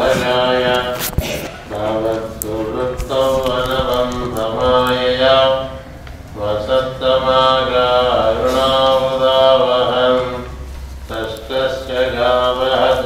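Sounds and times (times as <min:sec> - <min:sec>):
man chanting: 0:00.0 - 0:13.0.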